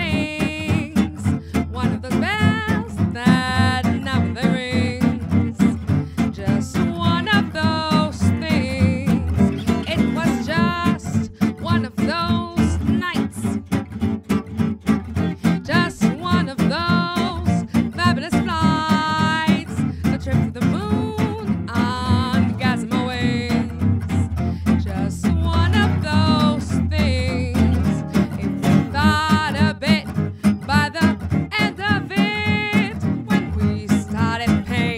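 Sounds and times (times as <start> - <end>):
woman scat singing: 0.0 - 13.7, 15.2 - 34.9
acoustic guitars strumming rhythm: 0.0 - 34.9.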